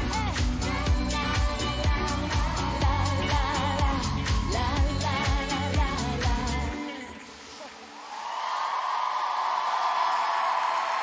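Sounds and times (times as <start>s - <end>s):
audience applauding and cheering: 7.6s - 11.0s.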